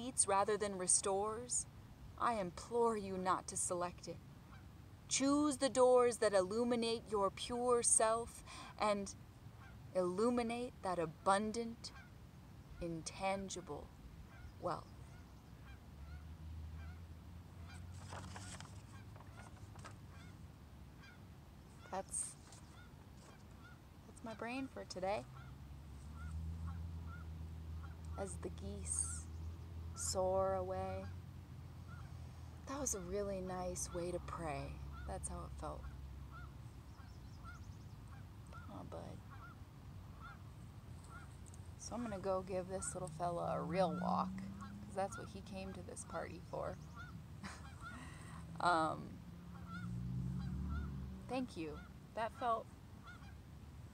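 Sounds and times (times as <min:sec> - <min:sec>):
low outdoor rumble: 0:00.0 - 0:53.9
geese honking: 0:12.8 - 0:17.0, 0:21.8 - 0:29.2, 0:31.9 - 0:48.8, 0:49.5 - 0:53.4.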